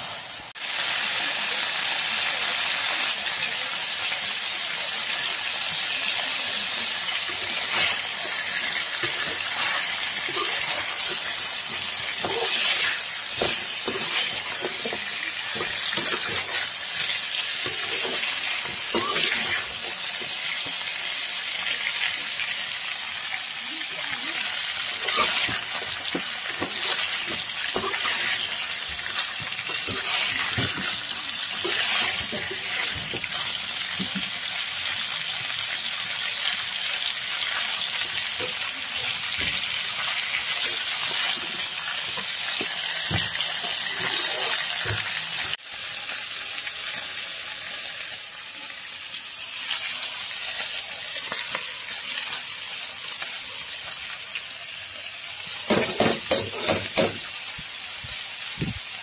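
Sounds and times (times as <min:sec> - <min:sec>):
food frying in oil: 0:00.0 - 0:59.0
spoon stirring in a pan: 0:07.0 - 0:20.9, 0:24.8 - 0:34.4.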